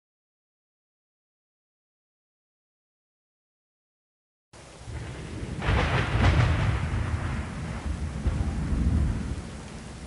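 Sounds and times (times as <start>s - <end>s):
low rumble of thunder: 4.6s - 10.0s
rain: 4.6s - 10.0s.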